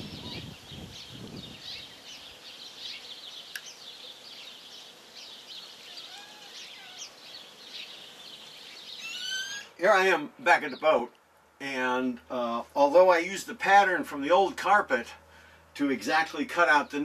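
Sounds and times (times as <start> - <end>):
small birds chirping: 0.0 - 11.2
steady outdoor hum: 0.0 - 17.0.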